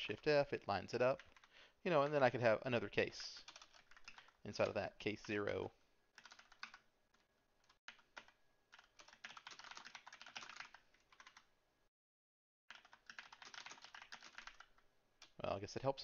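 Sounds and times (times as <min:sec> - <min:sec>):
faint keyboard typing: 0:00.0 - 0:02.4, 0:03.0 - 0:11.5, 0:12.7 - 0:15.4.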